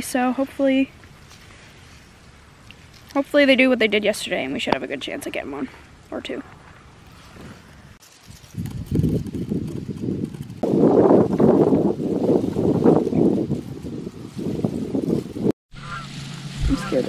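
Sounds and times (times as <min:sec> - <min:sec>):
wind buffeting microphone: 0:06.3 - 0:15.6, 0:16.6 - 0:17.0.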